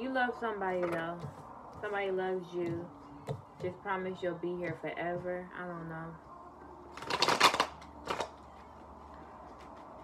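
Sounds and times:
cards being shuffled: 6.9 - 8.4.

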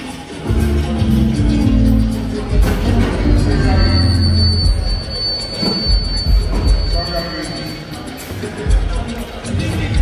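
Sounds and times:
music over sound system: 0.0 - 10.0
heavy bass: 0.3 - 7.6
high-pitched whine: 0.8 - 8.2.

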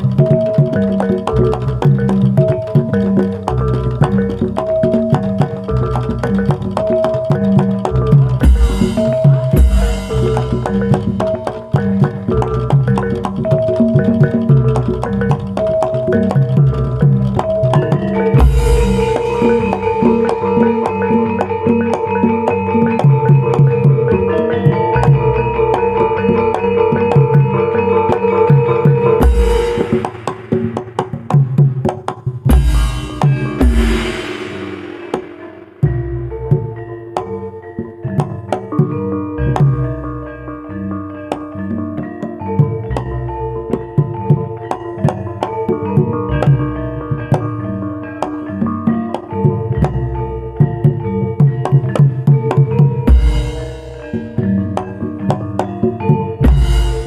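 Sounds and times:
drum strokes: 0.0 - 24.2, 28.1 - 36.8, 51.6 - 57.0
ringing metallophone notes: 0.0 - 57.0
sharp drum strokes: 8.4 - 11.9, 18.4 - 21.0, 29.1 - 36.7, 53.0 - 54.2, 56.4 - 57.0.

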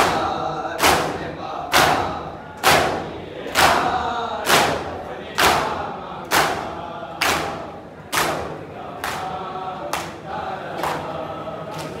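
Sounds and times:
group chanting: 0.0 - 12.0
men slapping chests in unison: 0.0 - 12.0.

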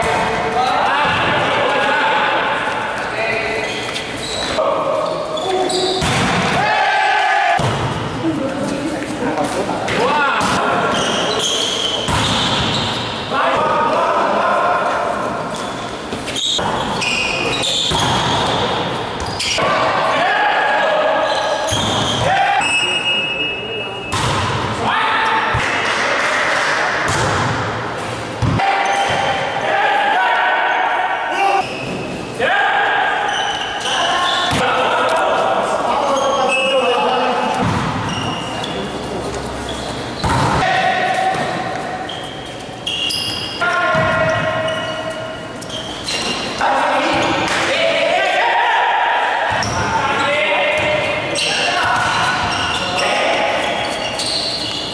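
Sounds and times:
players shouting: 4.5 - 8.0, 17.0 - 23.2, 28.5 - 31.8, 32.4 - 38.2, 46.6 - 54.6
volleyball strike: 6.0 - 6.8, 7.4 - 8.1, 12.0 - 13.0, 24.1 - 24.8, 25.5 - 27.8, 28.4 - 29.4, 37.5 - 38.1, 40.2 - 41.8
volleyball struck hard: 7.5 - 7.9, 24.1 - 24.7.

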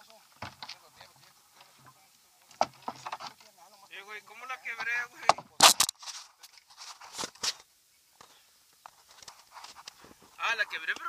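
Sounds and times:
phone rustling against clothing: 5.4 - 11.0.

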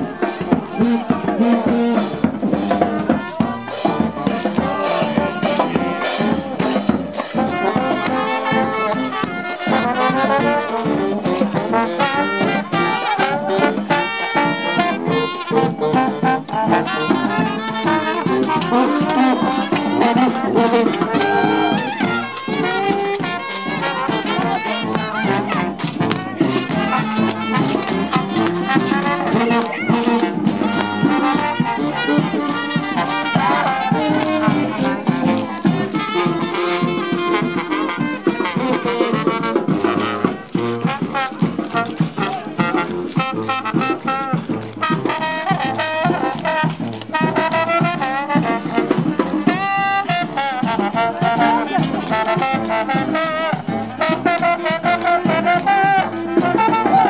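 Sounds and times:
marching brass band: 0.0 - 57.0.

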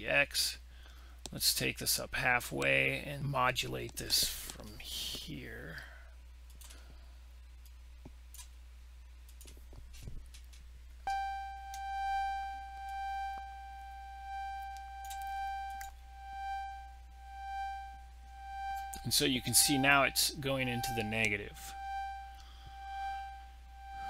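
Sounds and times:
faint clicks: 6.4 - 7.0
synthesizer organ note: 11.1 - 24.0.

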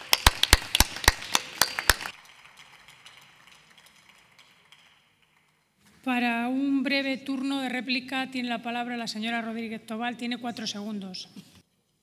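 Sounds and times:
people clapping: 0.0 - 5.8.

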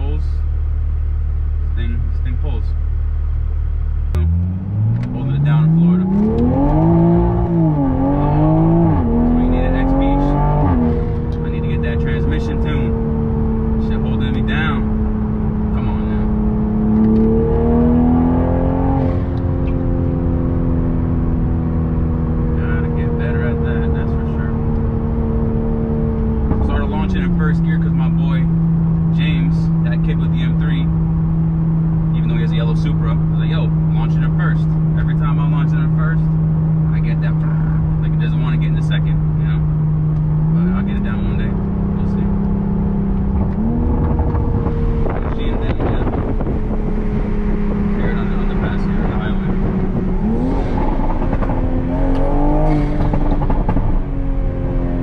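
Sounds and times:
car engine accelerating hard: 3.3 - 55.0.

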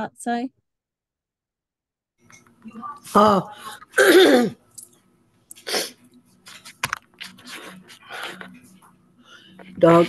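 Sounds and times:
person sneezing: 3.9 - 4.6.

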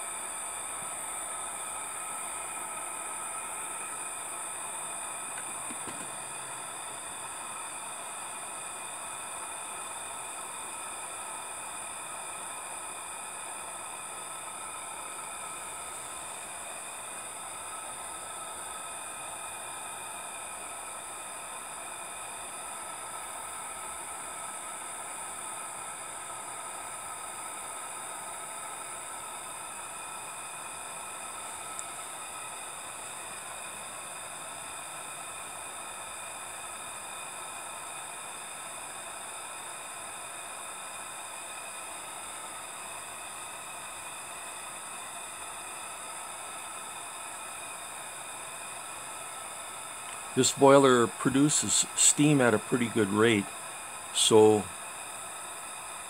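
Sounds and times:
miniature steam engine hissing whir: 0.0 - 56.0.

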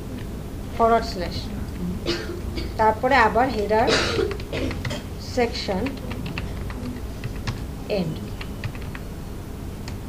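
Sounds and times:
computer keyboard typing: 3.6 - 5.0, 5.7 - 9.1.

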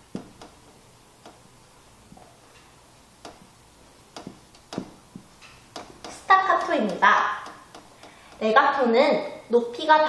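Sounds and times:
marker tapping on whiteboard: 0.0 - 0.6, 3.2 - 3.5, 4.1 - 8.5.

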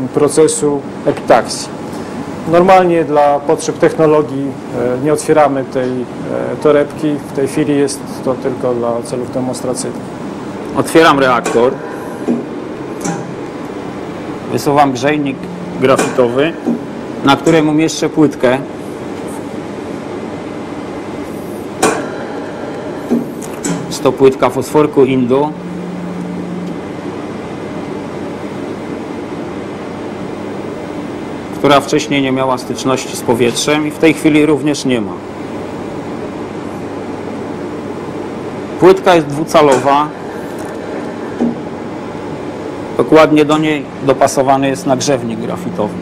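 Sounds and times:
steady equipment hiss: 0.0 - 46.0
sharp click: 13.0 - 13.4, 21.8 - 24.0.

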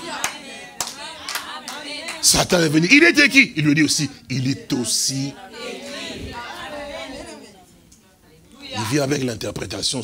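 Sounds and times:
scattered hand claps: 0.0 - 2.2.

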